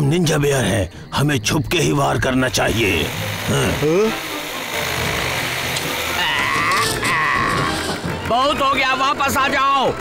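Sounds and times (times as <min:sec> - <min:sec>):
cartoon chainsaw engine running: 0:02.6 - 0:08.2.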